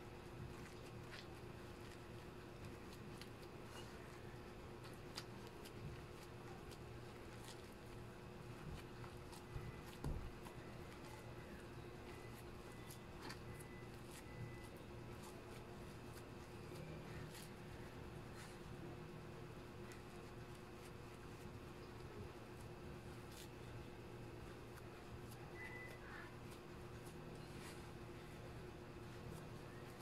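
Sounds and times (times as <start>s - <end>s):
hands squishing dough: 0.0s - 30.0s.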